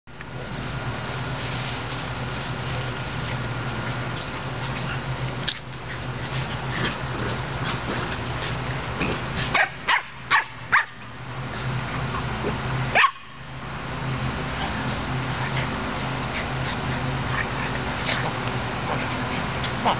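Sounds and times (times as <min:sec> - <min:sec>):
steady low hum: 0:00.1 - 0:19.9
dog barking: 0:09.5 - 0:11.0, 0:12.9 - 0:13.3.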